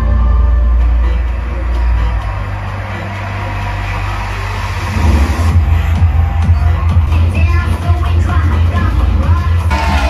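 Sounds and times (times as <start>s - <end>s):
low drone: 9.7s - 10.0s.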